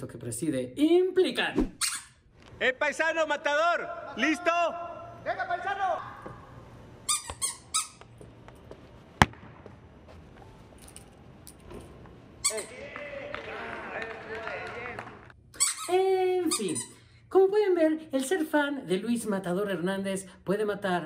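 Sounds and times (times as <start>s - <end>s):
shoe squeaks and knocks: 1.6s - 2.2s, 7.1s - 8.3s, 12.4s - 12.7s
sharp kick of a ball: 9.2s - 9.8s.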